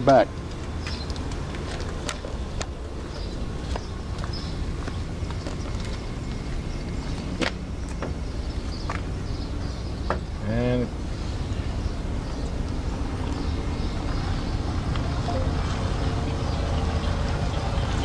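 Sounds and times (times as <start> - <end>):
bus engine idling: 0.0 - 18.0
footsteps on pavement: 0.3 - 9.6.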